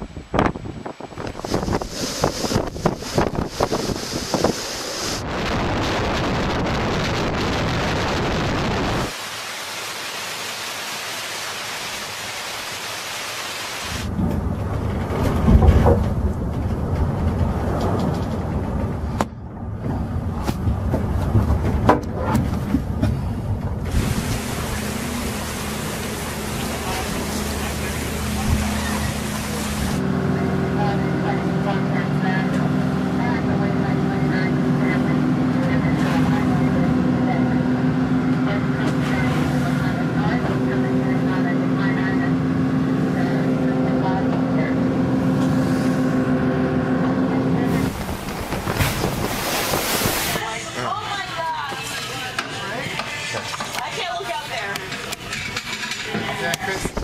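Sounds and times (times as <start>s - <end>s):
wind on microphone: 0.0s - 9.1s, 47.6s - 50.4s
sea noise: 0.0s - 19.2s, 23.2s - 54.6s
rain: 2.2s - 18.4s, 23.9s - 30.0s, 47.6s - 50.9s.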